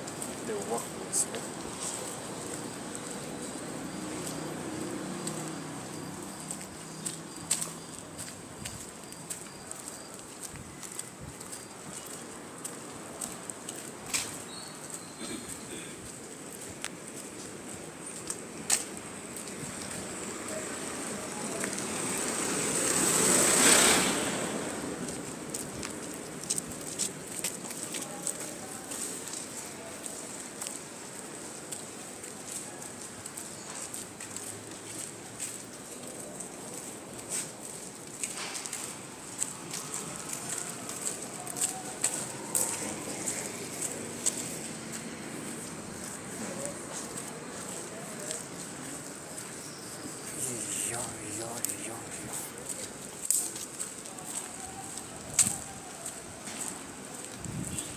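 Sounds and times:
footsteps: 0.0s - 20.1s, 31.7s - 57.9s
street ambience: 0.0s - 57.9s.

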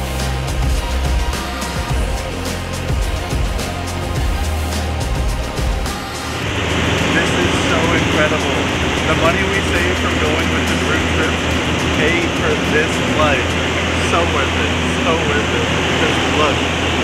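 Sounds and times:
aircraft engine drone: 0.0s - 17.0s
indistinct voices: 0.0s - 17.0s.

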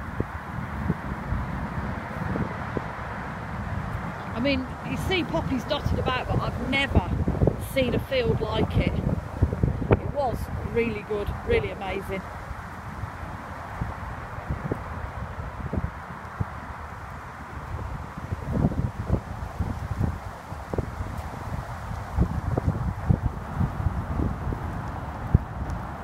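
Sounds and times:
steady wind hiss: 0.0s - 26.0s
wind buffeting microphone: 0.0s - 26.0s.

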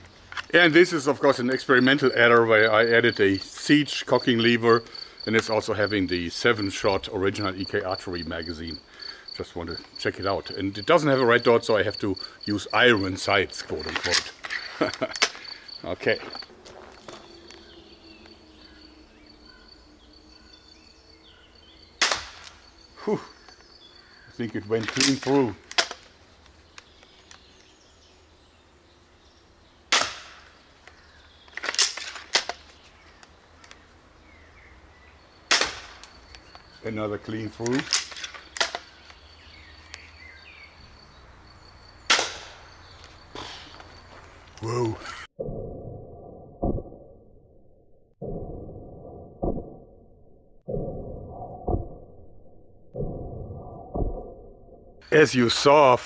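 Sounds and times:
crossbow string crack: 22.0s - 22.6s, 24.8s - 27.7s, 29.9s - 33.8s, 37.6s - 39.2s, 42.1s - 43.2s.

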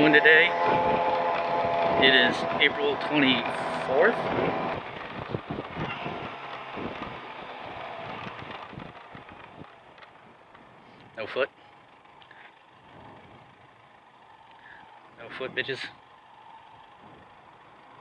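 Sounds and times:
wind noise: 0.0s - 9.8s
motorcycle engine: 0.0s - 18.0s.

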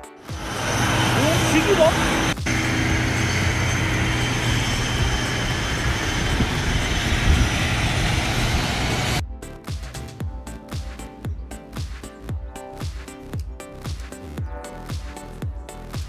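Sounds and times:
music with a beat: 0.0s - 0.5s, 9.2s - 16.0s
aircraft engine rush and whine: 0.1s - 9.2s.

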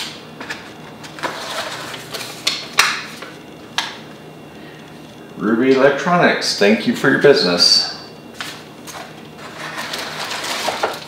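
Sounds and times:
paper and packaging rustling: 0.4s - 2.6s, 8.4s - 11.0s.

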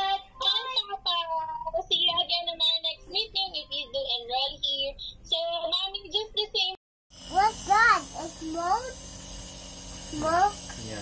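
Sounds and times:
child singing: 0.0s - 6.8s.

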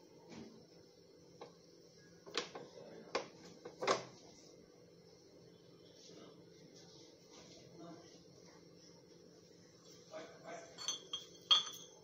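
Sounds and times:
steel utensils clinking: 10.8s - 12.0s.

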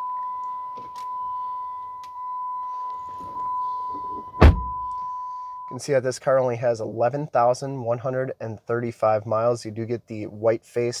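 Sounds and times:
car warning chime: 0.0s - 5.9s.

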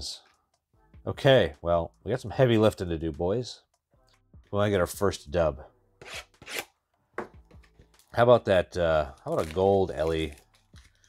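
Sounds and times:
shrink-wrap ripping: 9.2s - 11.0s.

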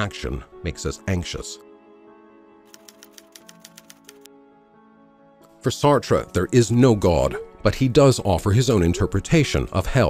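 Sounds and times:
soft background music: 0.0s - 10.0s
typewriter keystroke clicks: 2.7s - 4.3s.

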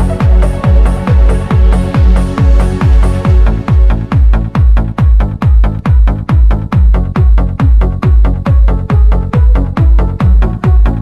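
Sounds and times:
electronic dance music: 0.0s - 11.0s
kick drum dropping in pitch: 0.0s - 11.0s
synth chords: 0.0s - 11.0s.

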